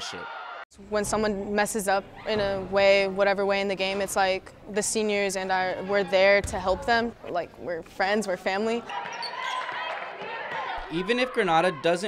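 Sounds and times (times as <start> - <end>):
overlapping crowd voices: 8.8 - 11.8.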